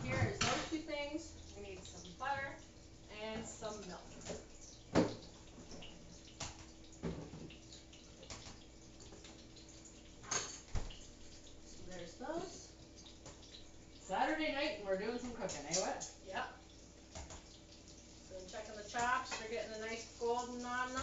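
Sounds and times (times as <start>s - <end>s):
utensils and dishes clinking: 0.0s - 0.9s, 10.2s - 11.0s
voices: 0.0s - 4.2s, 11.8s - 12.7s, 14.0s - 16.6s, 18.3s - 21.0s
faint steady hum: 0.0s - 21.0s.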